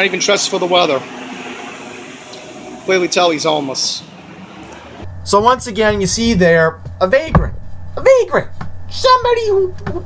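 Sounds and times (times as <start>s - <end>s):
traffic hum: 0.0s - 9.9s.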